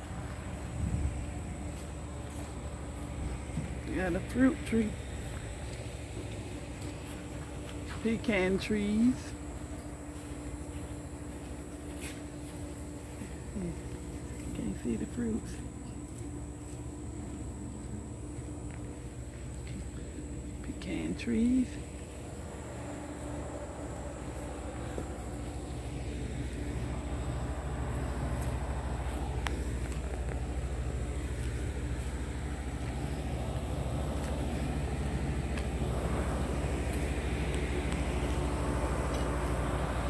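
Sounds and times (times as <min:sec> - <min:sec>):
air conditioning unit drone: 0:00.0 - 0:40.0
fan hiss: 0:00.0 - 0:40.0.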